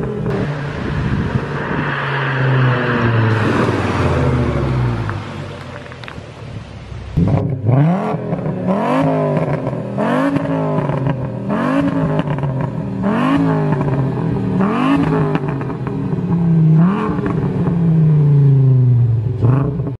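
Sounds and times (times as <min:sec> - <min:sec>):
car engine revving: 0:00.0 - 0:20.0.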